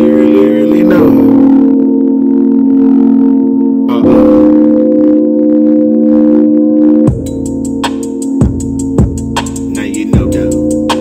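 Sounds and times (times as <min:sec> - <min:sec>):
sustained low chords: 0:00.0 - 0:11.0.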